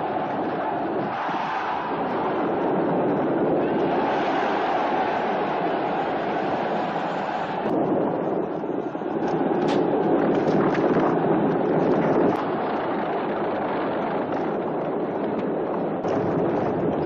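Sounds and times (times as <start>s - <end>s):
chariot wheels rumbling: 0.0s - 17.0s
sharp crack: 9.2s - 10.9s
galloping horses hooves: 9.2s - 16.9s.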